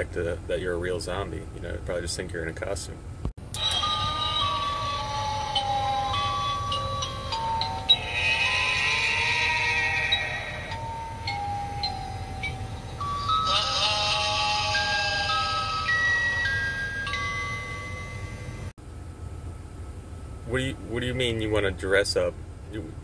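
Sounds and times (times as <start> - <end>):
slow melody of held notes: 3.6 - 18.7.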